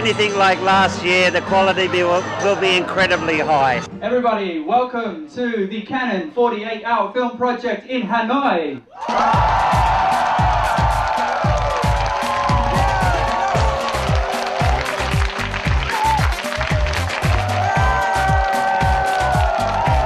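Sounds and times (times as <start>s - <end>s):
crowd clapping and cheering: 8.9s - 20.0s
music with kick-drum beat: 9.1s - 20.0s.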